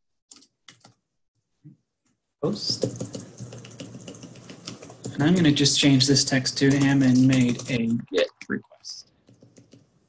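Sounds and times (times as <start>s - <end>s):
keyboard keys clicking: 0.3s - 1.0s, 6.6s - 8.0s.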